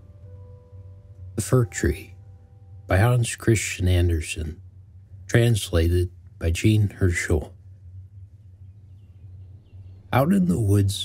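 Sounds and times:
low steady hum: 0.0 - 11.0
faint bird chirps: 6.5 - 11.0.

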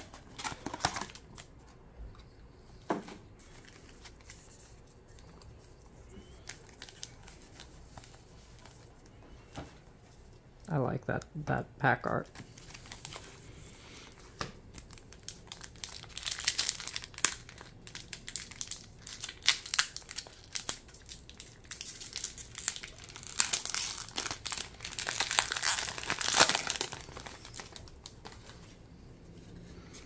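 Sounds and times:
foil wrapper crinkling: 14.7 - 28.7.

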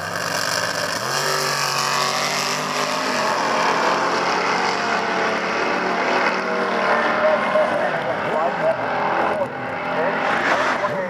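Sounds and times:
drag racing car engine revving: 0.0 - 11.0.

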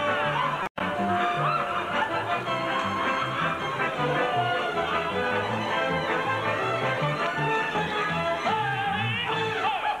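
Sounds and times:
band accompaniment: 0.0 - 9.7
bass line: 0.8 - 9.6.

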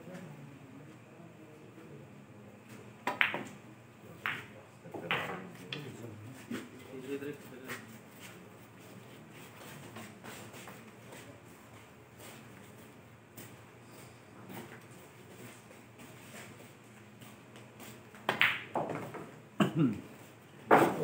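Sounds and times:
pool balls clicking: 3.1 - 3.6, 18.2 - 19.4.

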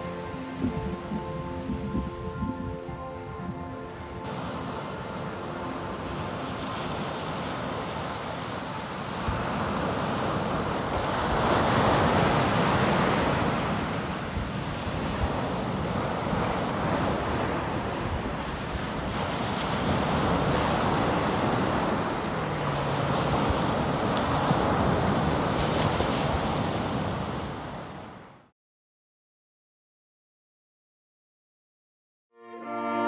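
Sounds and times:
wind buffeting microphone: 0.0 - 28.2
surf washing up beach: 4.1 - 28.5.

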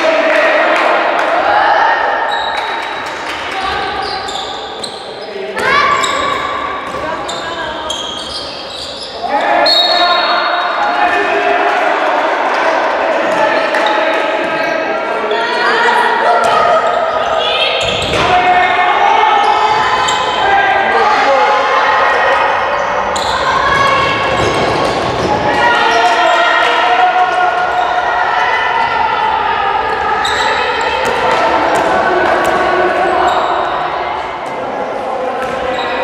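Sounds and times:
people calling and shouting: 0.0 - 36.0.

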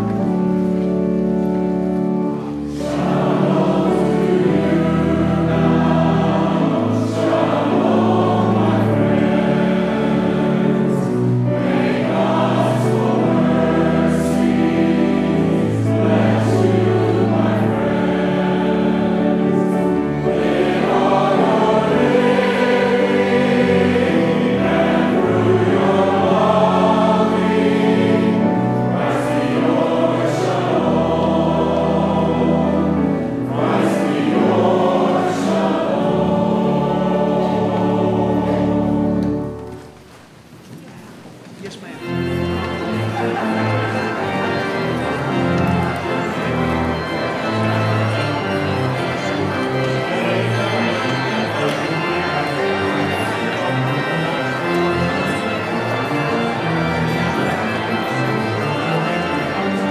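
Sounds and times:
pipe organ bass notes: 0.0 - 39.8, 42.0 - 59.9
choir singing in parts: 2.0 - 39.9, 42.1 - 59.9.

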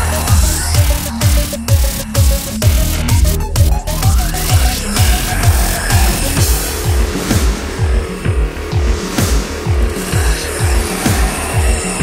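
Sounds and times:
electronic music with bass kicks: 0.0 - 12.0.

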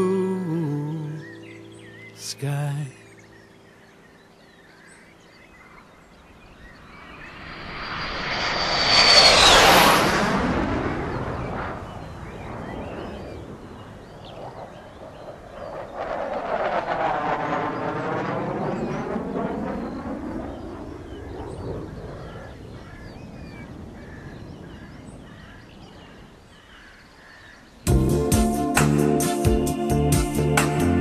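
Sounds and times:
jet engine passing: 6.4 - 22.7.

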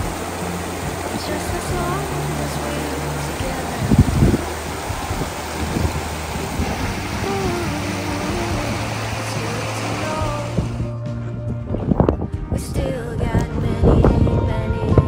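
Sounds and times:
stream rushing over stones: 0.0 - 10.9
slow melodic background music: 0.0 - 15.0.

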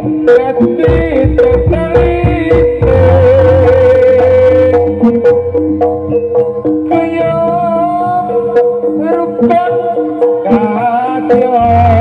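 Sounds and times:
gamelan music: 0.0 - 12.0
sharp drum and percussion strokes: 0.3 - 12.0.

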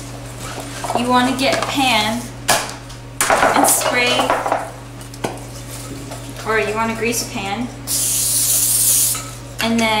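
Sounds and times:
aerosol can hissing: 7.9 - 9.2.

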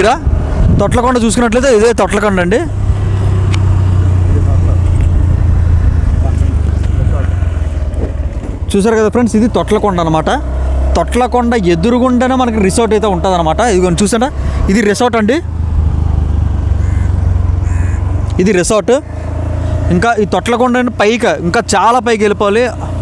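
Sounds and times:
man talking: 0.0 - 2.8, 4.2 - 7.5, 8.7 - 15.5, 18.3 - 19.1, 19.9 - 23.0
motorcycle engine droning: 0.0 - 23.0.

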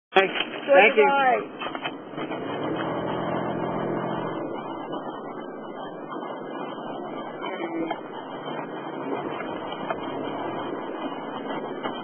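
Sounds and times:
road noise: 0.1 - 12.0
car engine running: 0.2 - 12.0.

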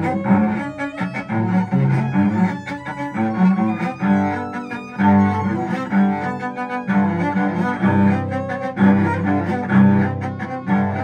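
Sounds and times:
bowed solo cello: 0.0 - 11.0.

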